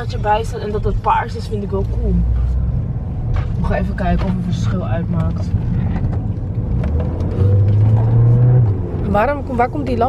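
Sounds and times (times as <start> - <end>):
car engine revving from inside: 6.6 - 9.4.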